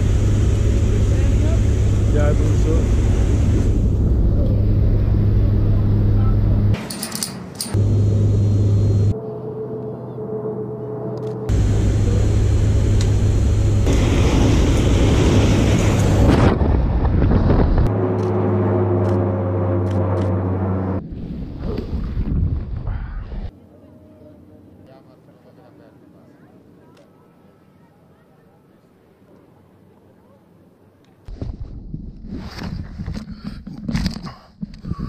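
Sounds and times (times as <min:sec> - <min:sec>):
turboprop engines droning: 0:00.0 - 0:21.0
wind noise on microphone: 0:13.9 - 0:17.9, 0:21.1 - 0:23.5, 0:31.3 - 0:35.0.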